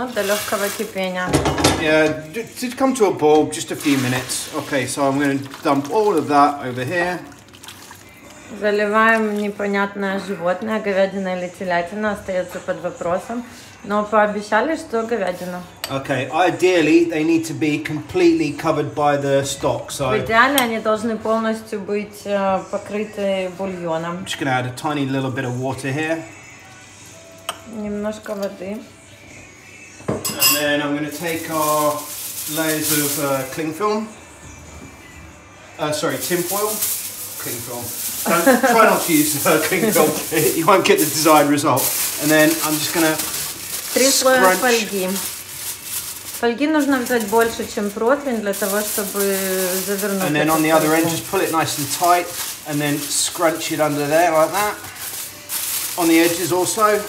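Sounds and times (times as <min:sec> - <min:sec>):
water pouring in a thin stream: 0:03.7 - 0:08.3
people talking: 0:37.8 - 0:43.2, 0:44.0 - 0:45.3, 0:46.4 - 0:54.8.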